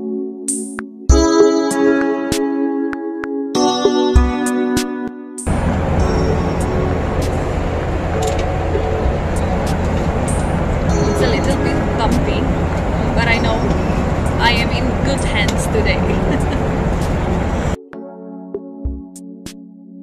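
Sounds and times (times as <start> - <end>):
music: 0.0 - 20.0
airliner cabin rumble: 5.5 - 17.8
indistinct voices: 5.5 - 17.8.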